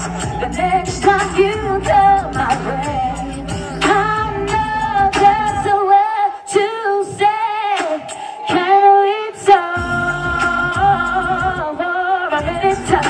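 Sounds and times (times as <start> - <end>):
backing track with bass and beat: 0.0 - 13.0
woman singing into a microphone: 0.0 - 13.0.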